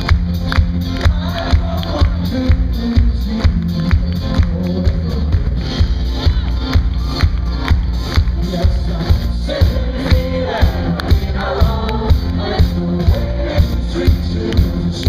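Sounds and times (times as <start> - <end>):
folk-rock band playing: 0.0 - 15.0.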